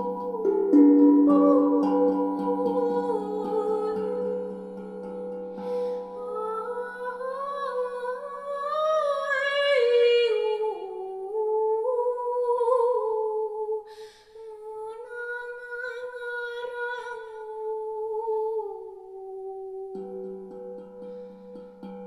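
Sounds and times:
steel drum played with mallets: 0.0 - 7.5, 20.0 - 22.0
woman humming: 0.0 - 7.6
breath: 5.5 - 6.2, 13.9 - 14.4, 21.0 - 21.6.

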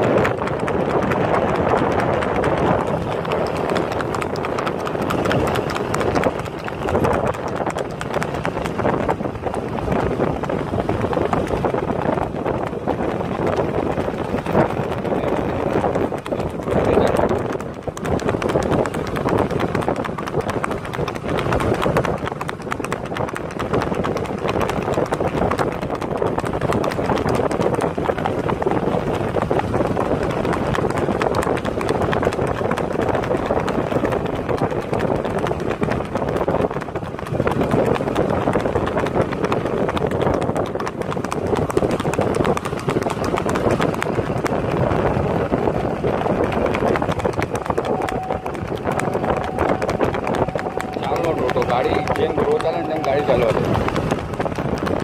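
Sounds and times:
horse hooves galloping on dirt: 0.0 - 55.0
steady rushing noise: 0.0 - 55.0.

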